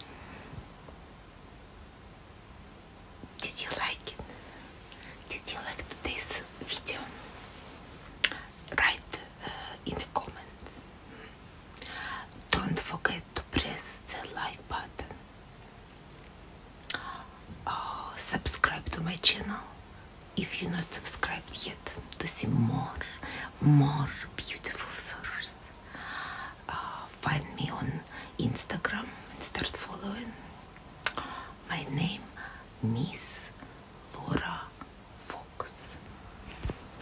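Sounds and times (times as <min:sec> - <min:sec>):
woman whispering: 0:03.4 - 0:07.4, 0:08.3 - 0:15.2, 0:16.9 - 0:25.9, 0:26.5 - 0:36.1.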